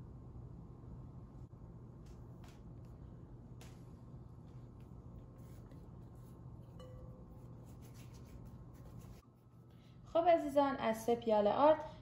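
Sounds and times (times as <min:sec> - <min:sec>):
low room hum: 0:00.0 - 0:12.0
dough handled in glass bowl: 0:04.8 - 0:09.2.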